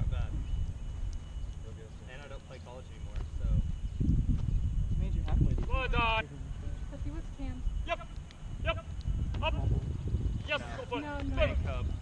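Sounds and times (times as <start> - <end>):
wind on microphone: 0.0 - 1.7, 3.0 - 12.0.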